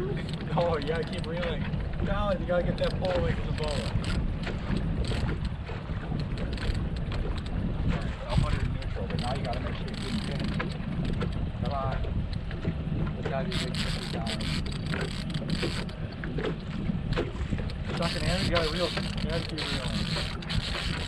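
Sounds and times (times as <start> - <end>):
boat motor running: 0.0 - 21.0
wind on microphone: 0.0 - 21.0.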